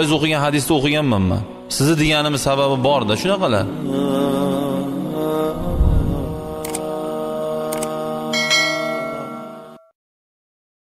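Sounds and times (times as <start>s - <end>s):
background music tones: 0.0s - 9.9s
bell-like notification chime: 8.4s - 9.9s.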